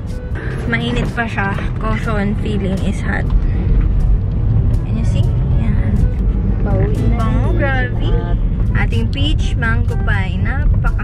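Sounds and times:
low rumble inside car cabin: 0.0 - 11.0.

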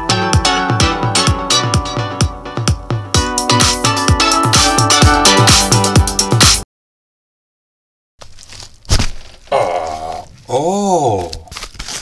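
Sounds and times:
sharp thunk: 8.9 - 9.2
man's wordless vocal sounds: 9.5 - 11.6.

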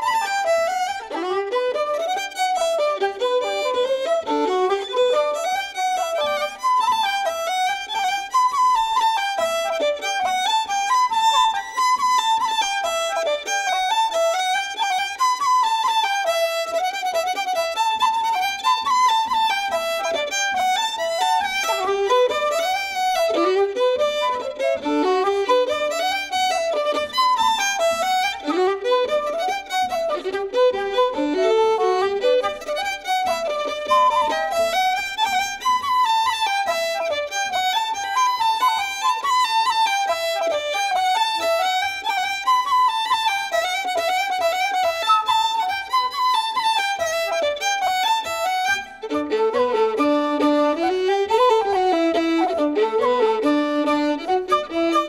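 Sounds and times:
fiddle and flute polka: 0.0 - 55.0.

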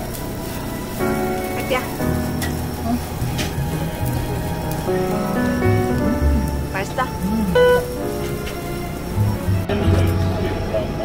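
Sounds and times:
meat sizzling on a grill: 0.0 - 10.9
background music: 0.0 - 11.0
voices: 1.5 - 2.0, 2.7 - 11.0.

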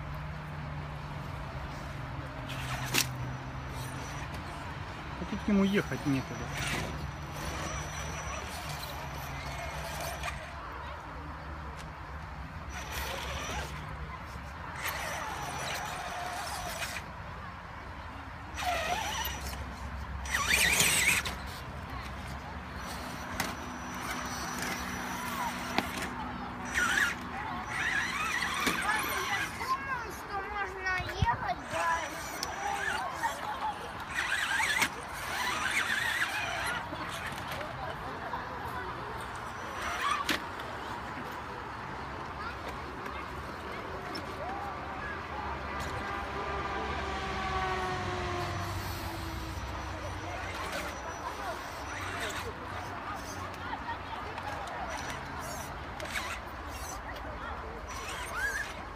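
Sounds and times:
tyres scrabbling on rocks: 18.6 - 37.9.

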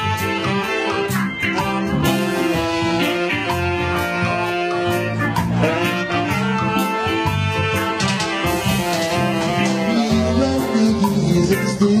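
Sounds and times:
bass: 0.0 - 12.0
guitar: 0.0 - 12.0
keyboard: 0.0 - 12.0
short high drum hits: 8.0 - 10.9.

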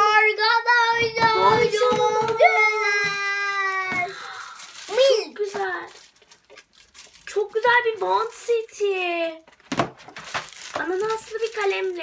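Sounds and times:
plastic packaging crinkling: 1.9 - 12.0.

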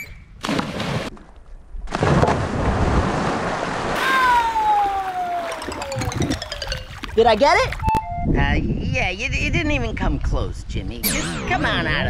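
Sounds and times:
water splashing: 0.4 - 8.0.

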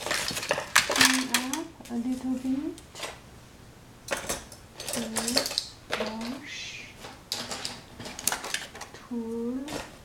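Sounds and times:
dishes clinking and knocking: 7.3 - 8.9.

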